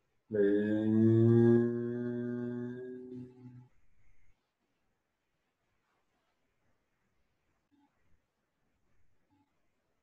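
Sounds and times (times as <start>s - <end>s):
man chanting low note: 0.3s - 3.7s.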